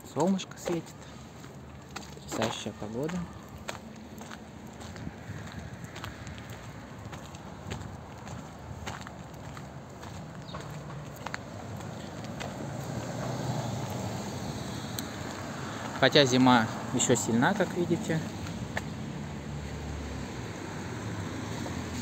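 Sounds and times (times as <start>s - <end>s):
footsteps on slushy pavement: 0.0s - 22.0s
street traffic: 0.0s - 22.0s
car engine: 10.7s - 22.0s.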